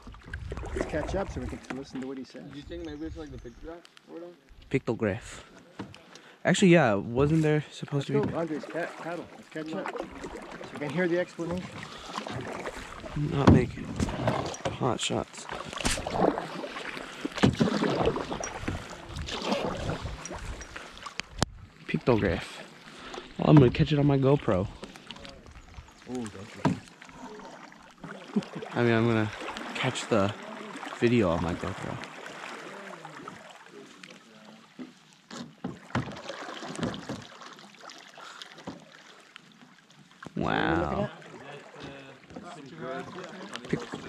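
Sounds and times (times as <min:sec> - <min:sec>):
paddle strokes splashing in water: 0:00.0 - 0:02.2, 0:07.3 - 0:24.0, 0:24.7 - 0:40.4, 0:41.1 - 0:44.0.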